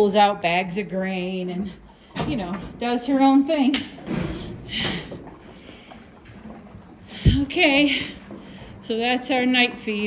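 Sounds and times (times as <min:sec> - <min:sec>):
horse chewing: 0:00.0 - 0:10.0.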